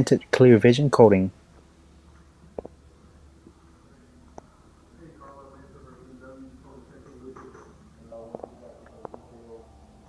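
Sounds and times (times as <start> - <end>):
faint indistinct voices: 2.3 - 10.0.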